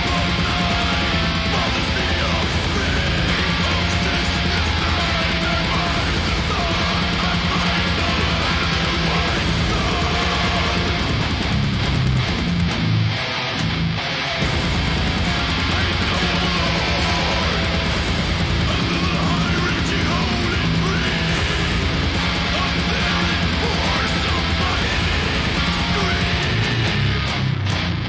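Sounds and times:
distorted electric guitar riffs: 0.0s - 28.0s
full band backing track: 0.0s - 28.0s.

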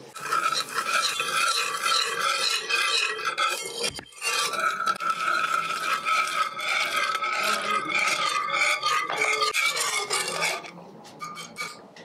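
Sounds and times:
whisk scraping a pot: 0.0s - 12.0s.

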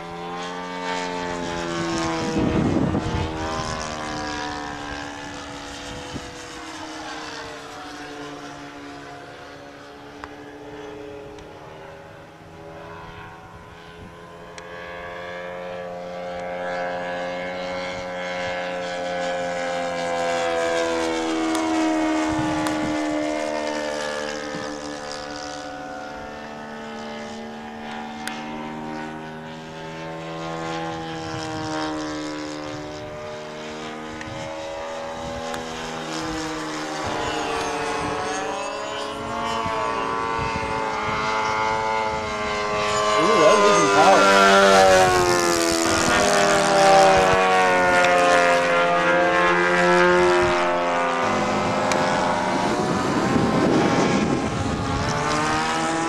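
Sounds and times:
model airplane engine droning: 0.0s - 56.0s.

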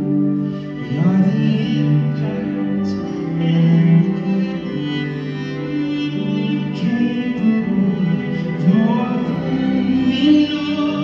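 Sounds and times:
strings holding long chords: 0.0s - 11.0s.

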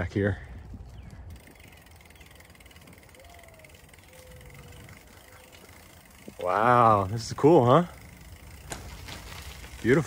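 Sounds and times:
bicycle tyres rolling on concrete: 0.0s - 10.0s.

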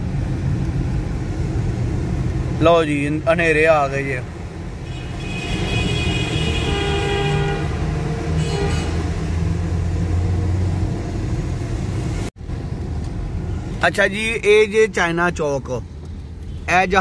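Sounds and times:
car road noise and engine rumble: 0.0s - 17.0s
vehicle horn: 4.8s - 9.3s.

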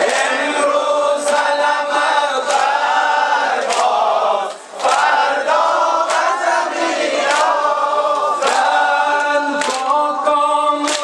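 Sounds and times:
men singing together: 0.0s - 11.0s.

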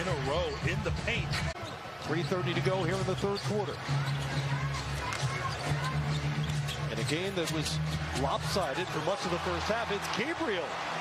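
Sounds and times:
crowd murmur: 0.0s - 9.6s.

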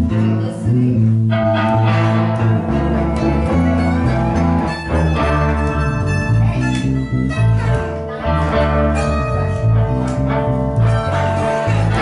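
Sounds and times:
live band electric guitars: 0.0s - 12.0s.

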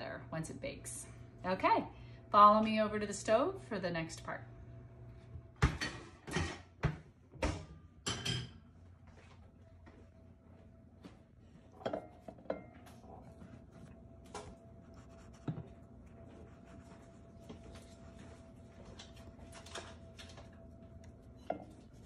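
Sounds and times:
dishes tapping: 11.8s - 12.8s.

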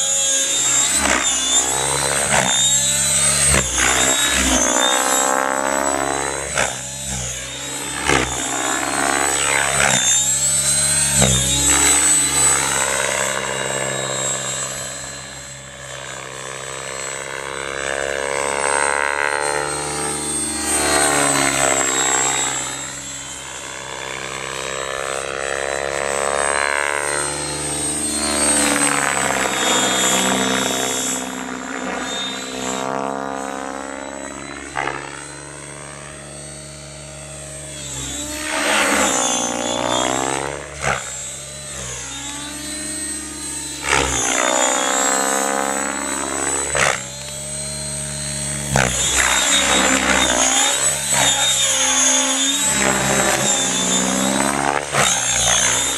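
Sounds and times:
rc helicopter motor whine: 0.0s - 55.9s
rotor drone: 0.0s - 55.9s.

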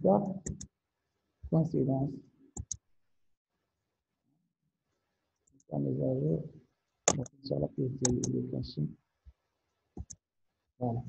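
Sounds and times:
person speaking: 0.0s - 0.6s, 1.5s - 2.2s, 5.7s - 6.5s, 7.1s - 8.9s
computer mouse clicks: 0.4s - 0.7s, 2.6s - 2.8s, 7.1s - 7.3s, 8.0s - 8.4s, 10.0s - 10.2s.

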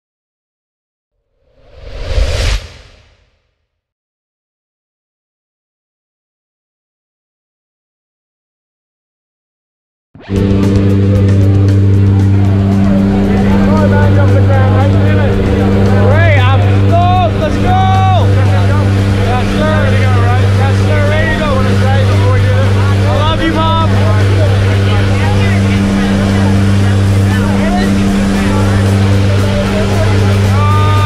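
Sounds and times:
propeller plane engine drone: 10.2s - 31.0s.

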